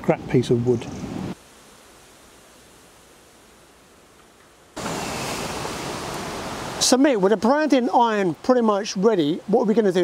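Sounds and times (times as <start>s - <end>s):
outdoor background noise: 0.0s - 10.0s
rushing hiss: 1.3s - 7.5s.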